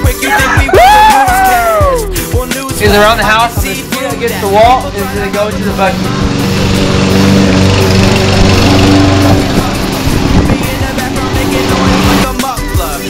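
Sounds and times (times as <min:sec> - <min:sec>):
hip-hop backing track: 0:00.0 - 0:08.6, 0:09.2 - 0:13.0.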